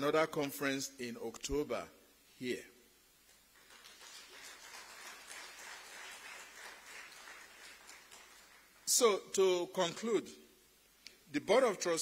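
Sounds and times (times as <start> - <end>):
audience applause: 3.6 - 8.9.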